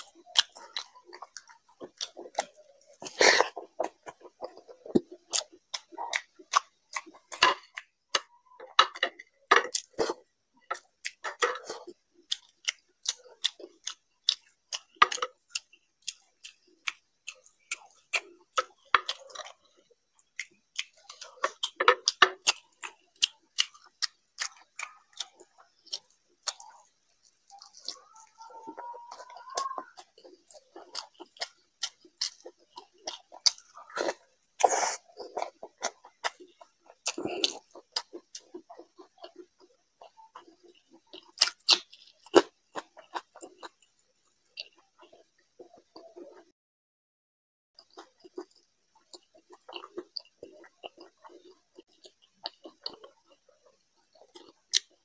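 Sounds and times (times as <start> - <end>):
open-mouthed chewing: 0.0 - 46.5, 47.8 - 55.0.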